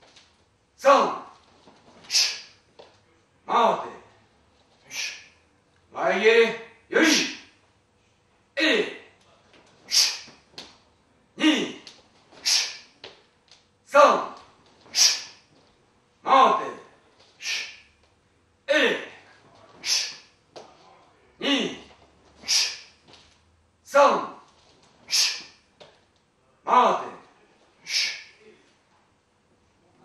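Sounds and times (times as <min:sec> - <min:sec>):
sharp hissing breath: 0:02.0 - 0:02.6, 0:04.8 - 0:05.4, 0:09.9 - 0:10.4, 0:12.4 - 0:12.9, 0:14.9 - 0:15.4, 0:17.4 - 0:17.9, 0:19.8 - 0:20.3, 0:22.4 - 0:23.0, 0:25.1 - 0:25.6, 0:27.8 - 0:28.4
person shouting on exhalation: 0:06.9 - 0:07.5, 0:11.4 - 0:11.8.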